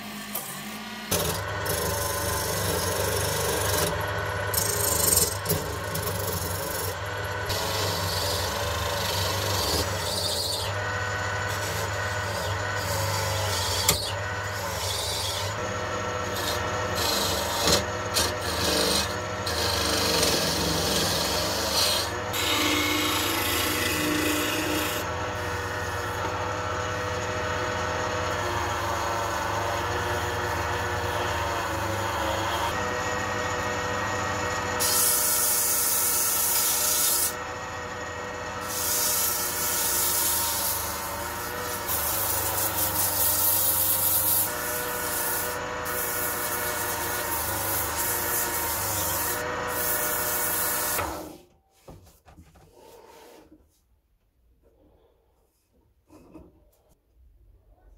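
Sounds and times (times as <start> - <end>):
lathe motor humming: 0.0 - 50.6
sandpaper sanding spinning wood: 34.8 - 37.4, 38.6 - 51.4.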